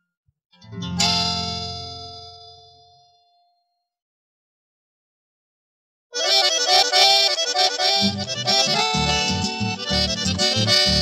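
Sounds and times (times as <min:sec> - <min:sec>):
guitars and bass chord ringing: 0:00.6 - 0:03.5, 0:07.9 - 0:11.0.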